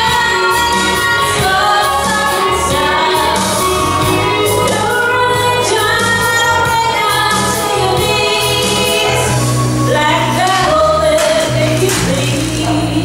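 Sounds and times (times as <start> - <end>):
instrumental accompaniment with bass: 0.0 - 13.0
woman singing into microphone: 0.0 - 13.0.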